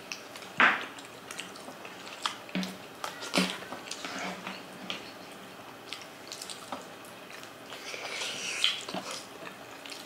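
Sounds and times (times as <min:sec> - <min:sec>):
chewing: 0:00.0 - 0:10.0.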